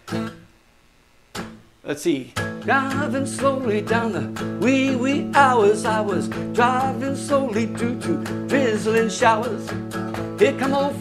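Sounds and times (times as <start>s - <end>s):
acoustic guitar strum: 0.0s - 0.5s, 1.3s - 1.7s, 2.3s - 11.0s.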